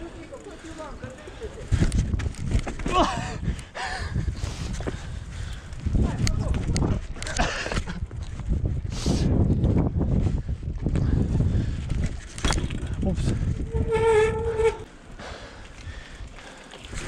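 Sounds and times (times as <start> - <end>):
bike clattering: 0.0 - 3.7, 11.6 - 17.0
bike tyres rumbling on paving: 0.0 - 17.0.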